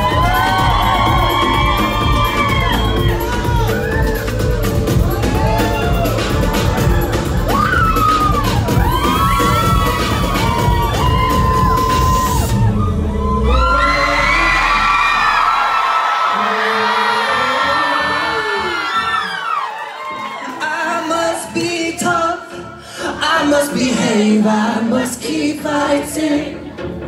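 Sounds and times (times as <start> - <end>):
crowd cheering and screaming: 0.0 - 22.3
electronic pop music: 0.0 - 27.0
person singing through pa: 20.4 - 26.5.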